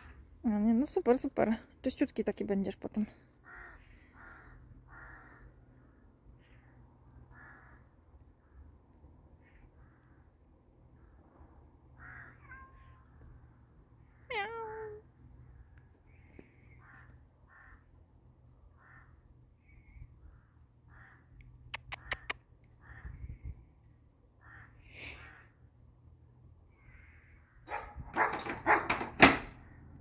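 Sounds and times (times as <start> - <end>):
cat meowing: 12.0 - 13.1
quick sharp clicks: 21.7 - 22.4.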